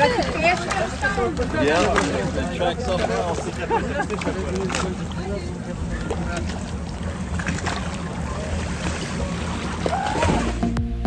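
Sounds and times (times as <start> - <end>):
faint voices: 0.0 - 10.5
boat motor humming: 0.0 - 11.0.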